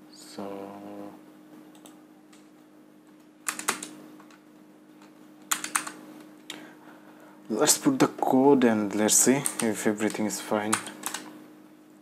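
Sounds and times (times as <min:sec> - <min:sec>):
faint steady hum: 0:00.0 - 0:12.0
computer keyboard typing: 0:03.4 - 0:04.4, 0:05.4 - 0:06.0, 0:09.3 - 0:11.3.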